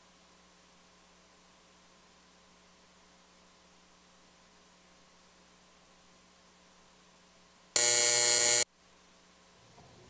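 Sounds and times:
harsh electric buzzer: 7.8 - 8.7.

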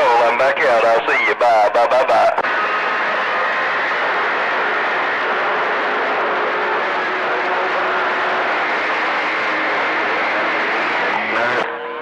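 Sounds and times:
radio static hiss: 0.0 - 3.2, 9.8 - 11.8.

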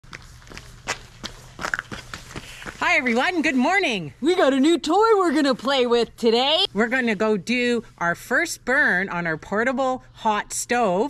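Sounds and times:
footsteps on wet asphalt: 0.1 - 3.6.

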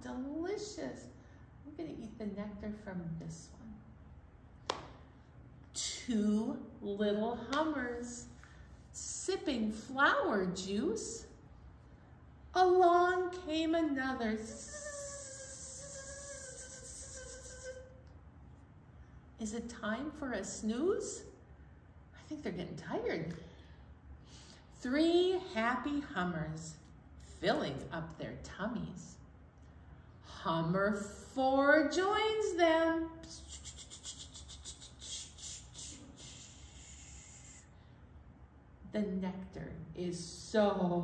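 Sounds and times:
person humming: 14.5 - 18.0, 33.3 - 37.6.

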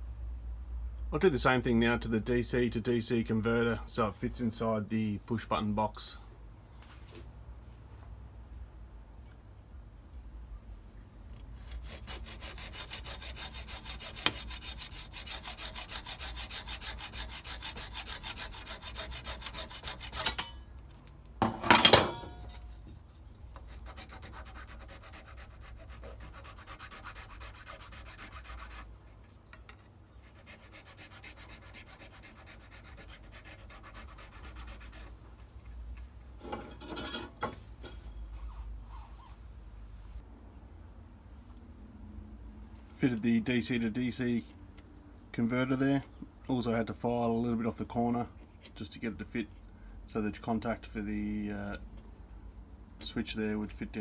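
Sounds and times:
file rasping: 11.6 - 20.5, 23.6 - 28.9, 30.2 - 35.2
hacksaw cutting: 11.6 - 20.6, 23.7 - 28.8, 30.4 - 35.1
saw clanking down: 19.8 - 20.6.

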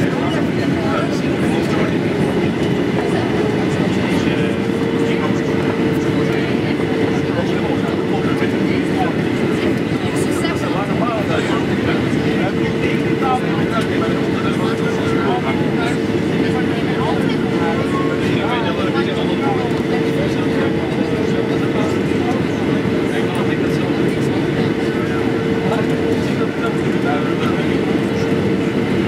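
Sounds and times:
airflow over fuselage: 0.0 - 29.0
airplane cabin engine rumble: 0.0 - 29.0.

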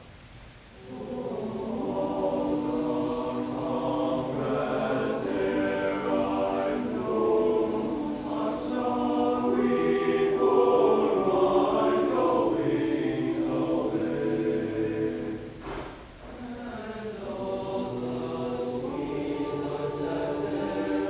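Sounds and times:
male choir singing: 0.8 - 21.0.

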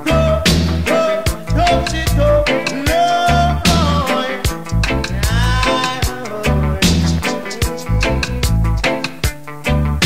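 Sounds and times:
reggae music: 0.0 - 10.0.

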